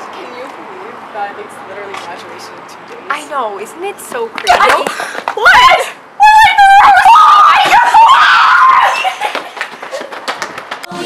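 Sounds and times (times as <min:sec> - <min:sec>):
girls screaming: 0:05.3 - 0:09.6.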